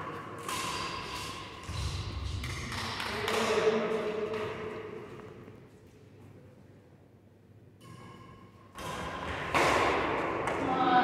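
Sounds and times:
racket striking shuttlecock: 0.2s - 5.0s, 7.8s - 10.6s.

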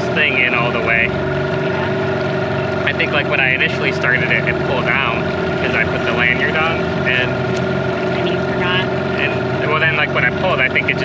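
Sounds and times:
outboard motor running: 0.0s - 11.0s.

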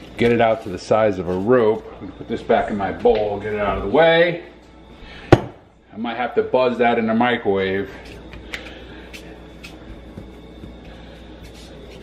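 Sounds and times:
steady low hum: 0.0s - 12.0s
hands rolling dough: 8.0s - 12.0s.

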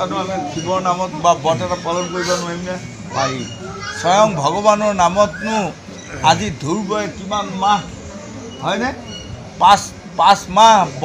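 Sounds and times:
man talking: 0.0s - 8.0s, 9.6s - 11.0s.

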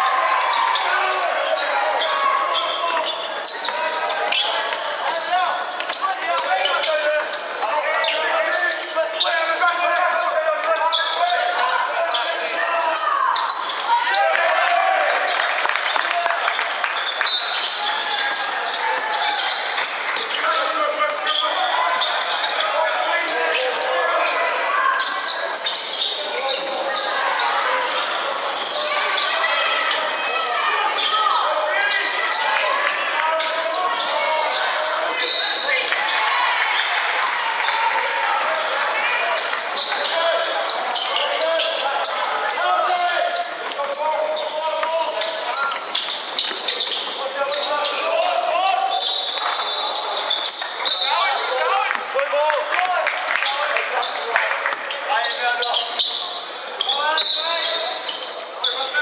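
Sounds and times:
referee's whistle: 48.9s - 51.5s, 55.6s - 57.9s.

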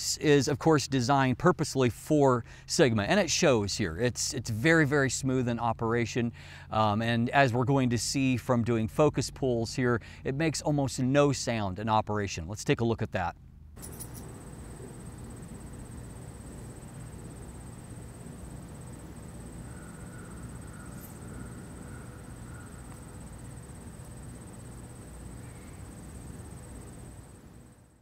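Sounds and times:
low rumble and hiss: 0.0s - 28.0s
faint high whine: 13.8s - 28.0s.

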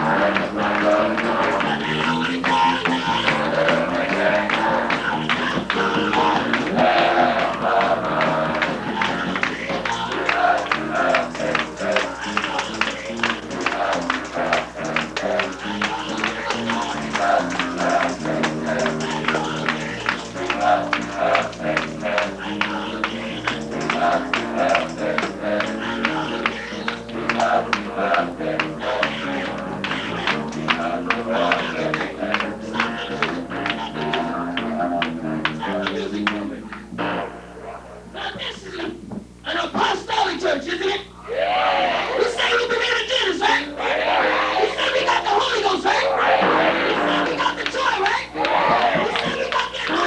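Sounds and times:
instrumental backing: 0.0s - 38.1s
choir singing gospel: 0.0s - 38.3s, 41.2s - 50.0s
hand clapping: 0.2s - 36.9s, 47.2s - 50.0s.

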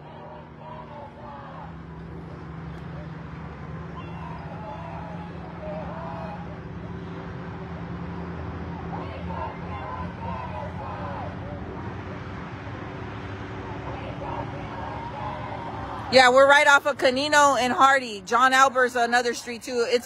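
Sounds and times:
shouting through megaphones: 0.0s - 7.8s, 8.5s - 12.4s, 13.4s - 20.0s
crowd chanting and shouting: 0.0s - 20.0s
low hum of vehicle engines: 0.0s - 20.0s.

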